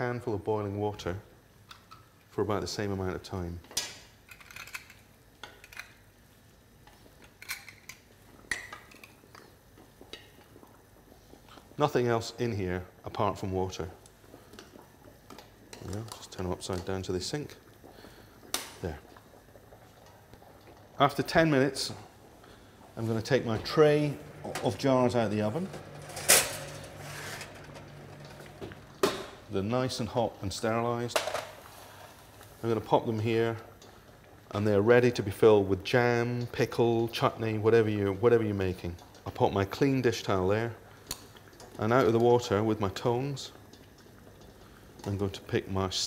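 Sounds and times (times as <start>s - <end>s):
boiling water: 0.0s - 46.0s
low steady hum: 5.6s - 46.0s
oven tray handling: 23.1s - 29.5s.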